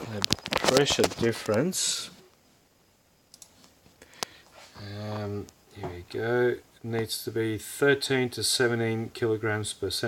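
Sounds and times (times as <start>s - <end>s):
computer mouse clicking: 3.3s - 4.3s.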